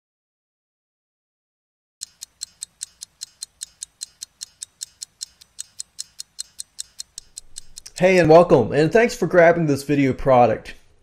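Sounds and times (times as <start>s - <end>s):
sharp ticking: 2.0s - 8.4s.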